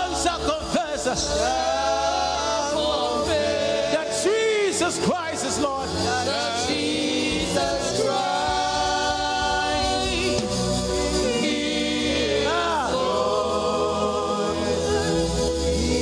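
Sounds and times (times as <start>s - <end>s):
backing singers: 0.0s - 16.0s
instrumental accompaniment: 0.0s - 16.0s
man singing lead: 0.0s - 16.0s.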